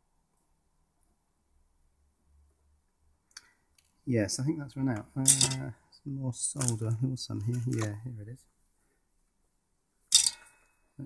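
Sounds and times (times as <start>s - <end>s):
small object clinking on workbench: 5.2s - 5.7s, 10.1s - 10.6s.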